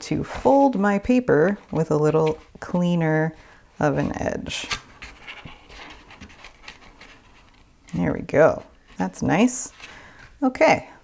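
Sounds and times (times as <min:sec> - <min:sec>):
paper rustling and crackling: 0:04.0 - 0:10.4.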